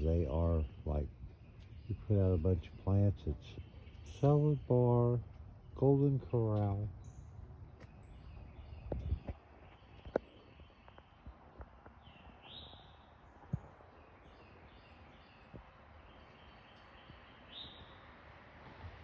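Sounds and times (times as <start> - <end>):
birds calling: 0.0 - 18.5.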